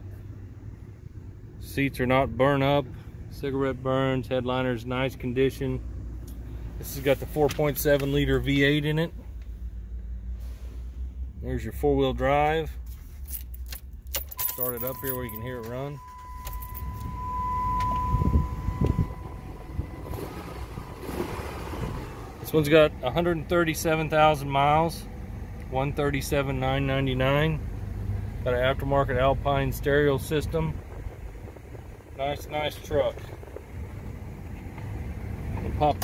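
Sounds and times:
engine idling: 0:00.0 - 0:36.0
steady high tone: 0:14.4 - 0:22.4.

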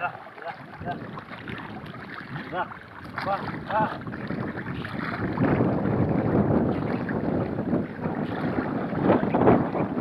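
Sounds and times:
water splashing and churning: 0:00.0 - 0:10.0.

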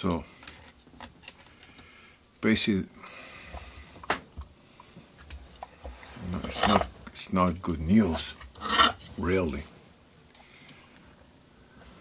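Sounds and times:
soft rubbing hiss: 0:00.0 - 0:12.0.

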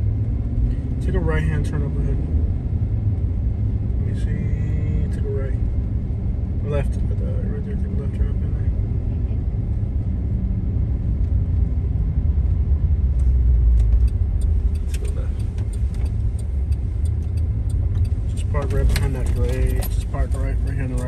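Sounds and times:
car engine and tyre rumble: 0:00.0 - 0:21.0
faint light ticks: 0:13.2 - 0:21.0.

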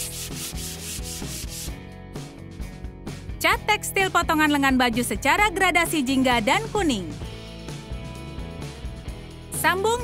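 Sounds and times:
sandpaper rubbing on fabric: 0:00.0 - 0:01.8.

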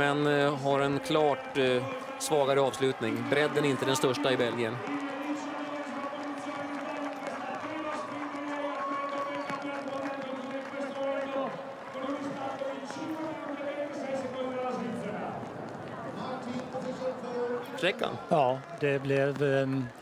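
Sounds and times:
man talking: 0:00.0 - 0:15.4, 0:16.1 - 0:20.0
outdoor background noise: 0:07.2 - 0:20.0.

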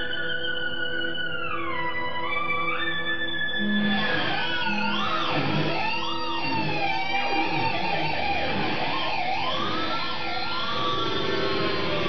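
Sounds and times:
electric guitar solo with bends: 0:00.0 - 0:12.0.

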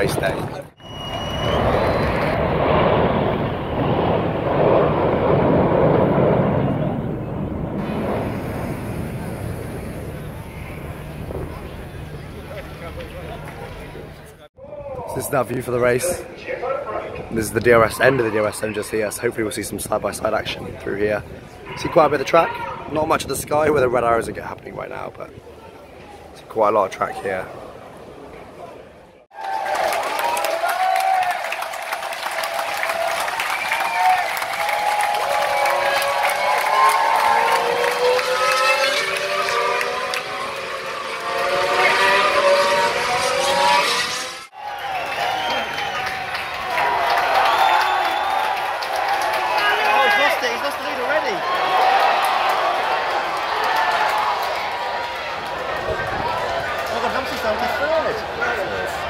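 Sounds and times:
racing car engines passing: 0:35.9 - 0:44.5.

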